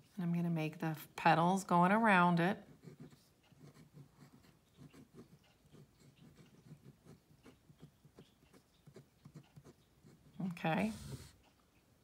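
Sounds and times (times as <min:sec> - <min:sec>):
pen scratching on paper: 0:02.6 - 0:11.4.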